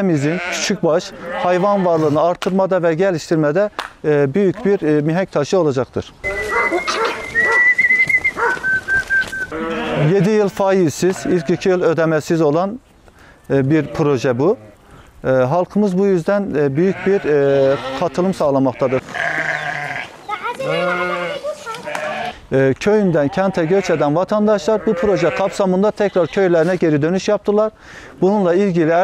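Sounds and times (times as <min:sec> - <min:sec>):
sheep bleating: 0:00.1 - 0:02.1, 0:06.2 - 0:07.6, 0:09.5 - 0:11.8, 0:16.7 - 0:22.4, 0:23.1 - 0:26.7.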